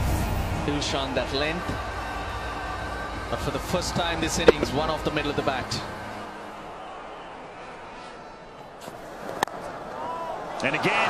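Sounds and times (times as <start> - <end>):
cricket bat striking ball: 4.5 - 4.8.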